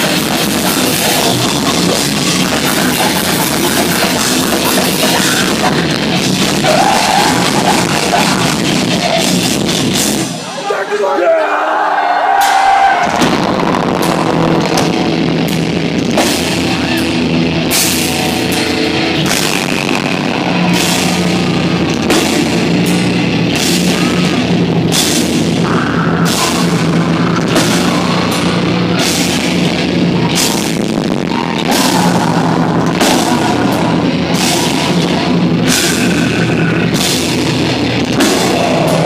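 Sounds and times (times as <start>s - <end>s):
heavy metal band playing live: 0.0s - 11.0s, 12.0s - 39.0s.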